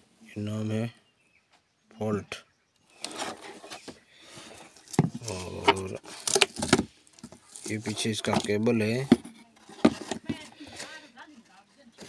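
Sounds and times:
power cable rustling in cardboard box: 3.0s - 11.0s.

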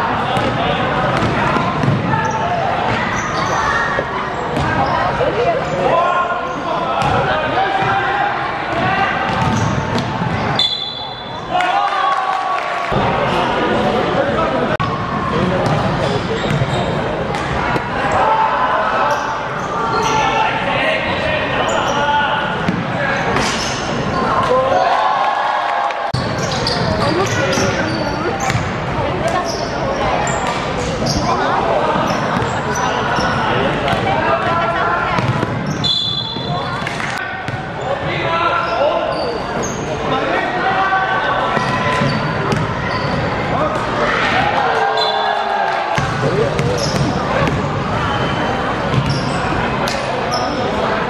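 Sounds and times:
shouting and chatter: 0.0s - 51.0s.

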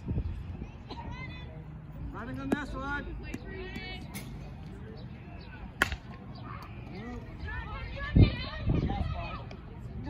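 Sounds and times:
bat hitting softball: 5.8s - 6.2s.

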